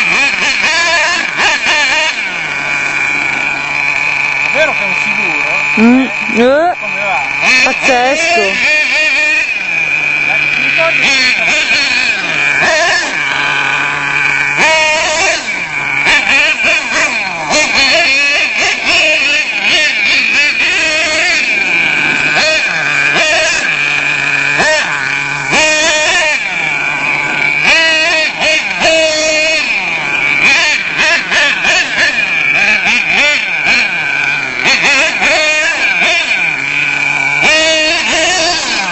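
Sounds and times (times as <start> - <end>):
small engine revving: 0.0 - 38.9.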